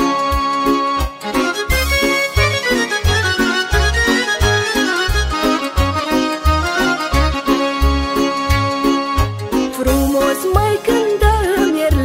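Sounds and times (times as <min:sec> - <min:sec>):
folk band with bass beat: 0:00.0 - 0:12.0
woman singing: 0:09.7 - 0:12.0.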